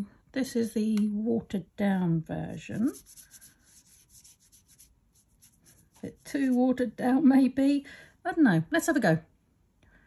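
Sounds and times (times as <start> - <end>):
paintbrush scratching: 2.6 - 6.8.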